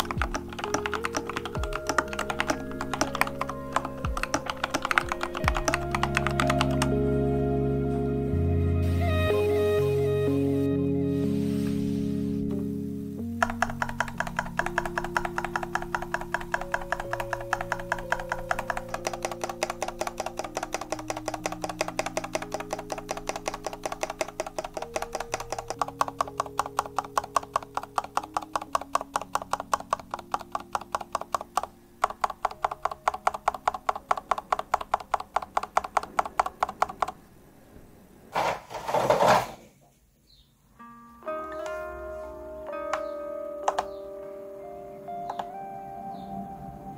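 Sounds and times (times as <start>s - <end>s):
mechanical keyboard key clicks: 0.0s - 6.9s, 13.4s - 37.2s
soft background music: 0.0s - 35.9s, 40.8s - 46.9s.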